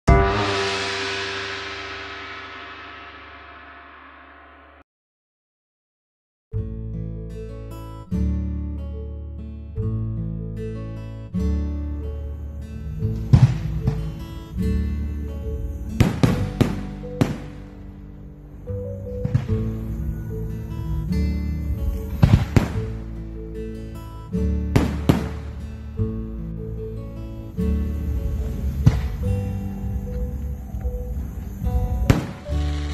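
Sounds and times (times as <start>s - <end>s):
music: 0.0s - 4.8s, 6.5s - 32.9s
gong-like hit ringing: 0.1s - 4.8s
fireworks bangs: 13.2s - 14.2s, 15.9s - 17.8s, 19.2s - 20.0s, 21.8s - 23.0s, 24.8s - 25.6s, 28.4s - 30.1s, 31.2s - 32.9s.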